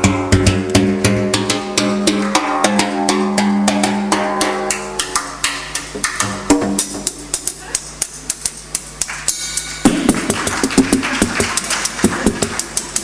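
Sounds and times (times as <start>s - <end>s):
drum and percussion hits: 0.0s - 13.0s.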